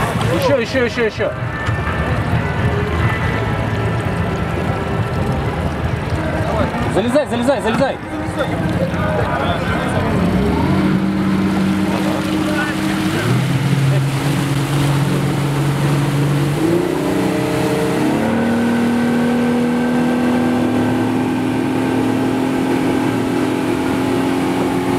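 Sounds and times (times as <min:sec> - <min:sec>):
motorboat engine running: 0:00.0 - 0:24.9.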